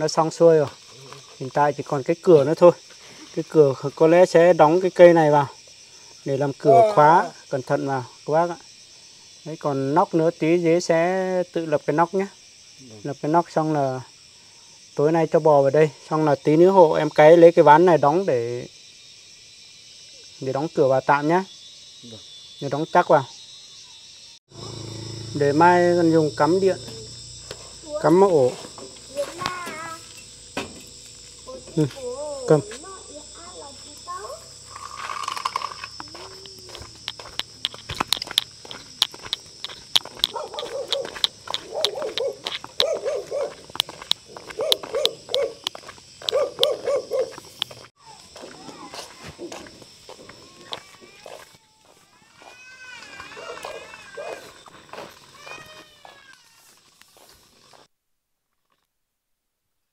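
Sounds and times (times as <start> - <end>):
insects droning: 0.0 - 57.9
distant voices and calls: 20.0 - 57.0
sharp clicks and taps: 35.7 - 43.0.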